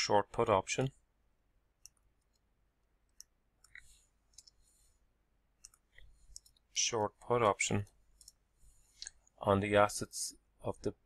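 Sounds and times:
computer keyboard and mouse clicks: 3.1s - 4.6s, 5.6s - 6.6s.

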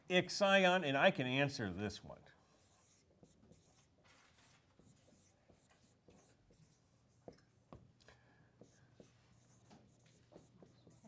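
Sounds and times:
marker squeaking on whiteboard: 2.4s - 7.4s, 8.6s - 11.0s.

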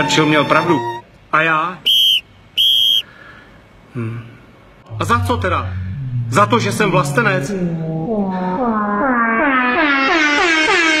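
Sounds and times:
air horn blasts: 0.0s - 1.1s, 9.8s - 11.0s.

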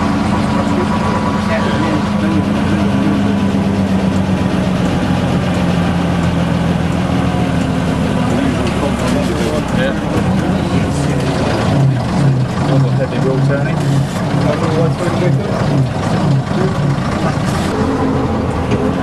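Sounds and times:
people talking: 0.0s - 5.3s, 7.0s - 15.9s, 16.5s - 19.0s
bus engine running: 0.0s - 19.0s.

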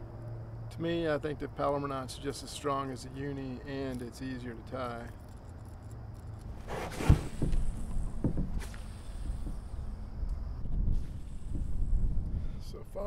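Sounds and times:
brief rustle: 5.2s - 8.0s
sharp thump in kayak: 6.7s - 8.7s
steady low rumble: 7.4s - 13.0s.

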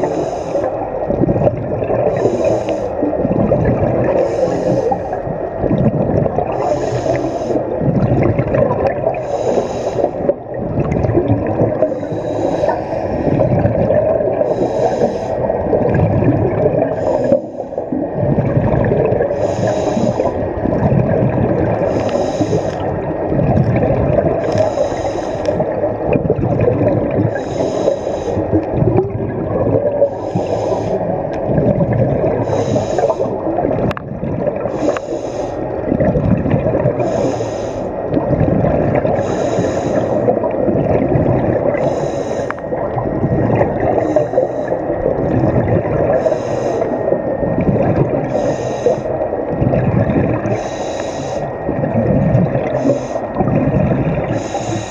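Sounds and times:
bubbling rumble of exhaled air: 0.0s - 54.9s.

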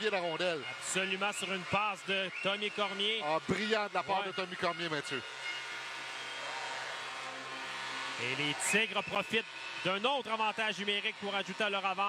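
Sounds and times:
arena crowd cheering roar: 0.0s - 12.0s.

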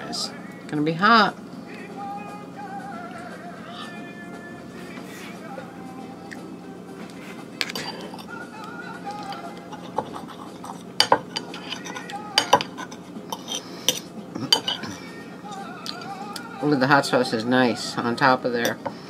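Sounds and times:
fork scraping china plate: 7.6s - 8.4s, 9.2s - 15.1s.

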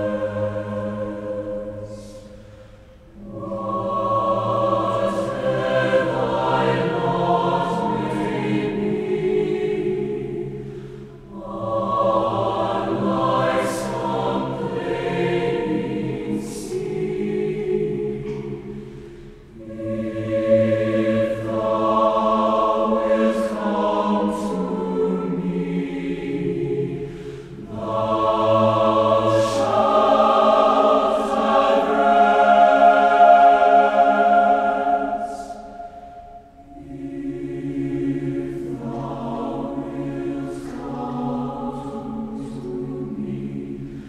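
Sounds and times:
choir singing a slow hymn: 0.0s - 44.0s.

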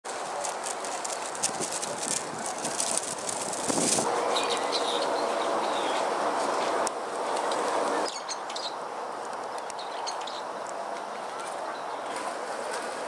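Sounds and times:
outdoor background noise: 0.0s - 13.0s
small birds chirping: 4.2s - 8.8s, 9.6s - 12.1s.

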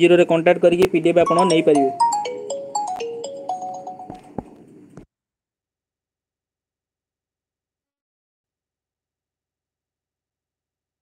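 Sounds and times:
electronic melody: 1.2s - 4.6s.

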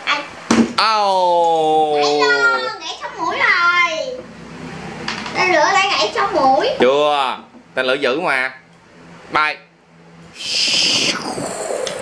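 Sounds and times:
child making rocket whoosh: 10.4s - 12.0s.

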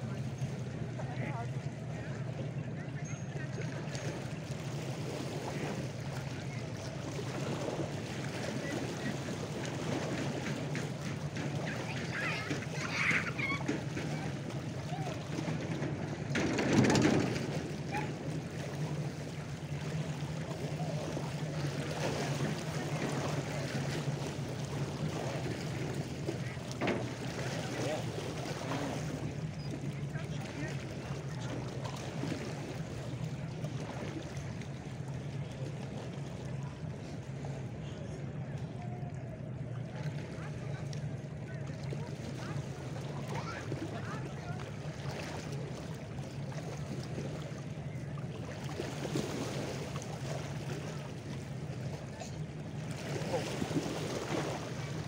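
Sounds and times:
distant voices: 0.0s - 55.0s
small waves lapping: 0.0s - 55.0s
steady low hum: 0.0s - 55.0s.

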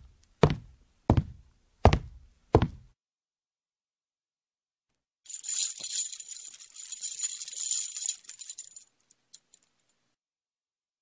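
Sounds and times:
metal chains rattling: 5.3s - 9.8s.

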